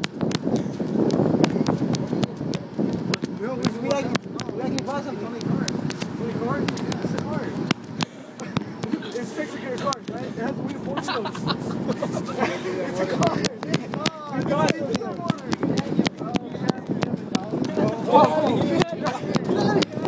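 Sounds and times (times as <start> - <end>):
microphone handling clicks: 0.0 - 9.1, 13.2 - 20.0
indistinct voices talking: 0.0 - 20.0.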